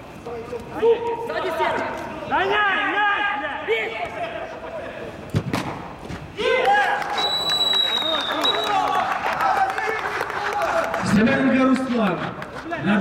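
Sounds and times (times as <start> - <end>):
football kicked thud: 5.4 - 6.2
referee's whistle: 7.1 - 9.0.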